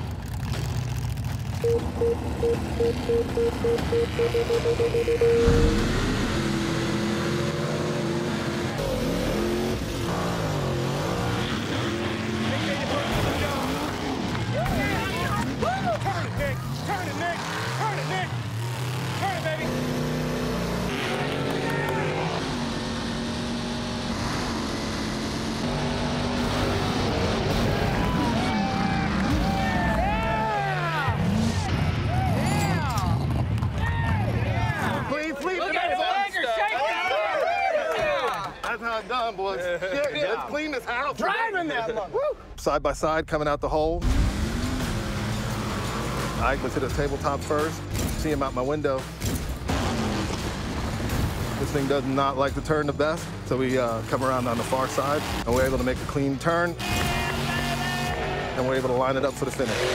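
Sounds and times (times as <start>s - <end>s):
truck engines racing at full throttle: 0.0s - 37.3s, 43.5s - 59.9s.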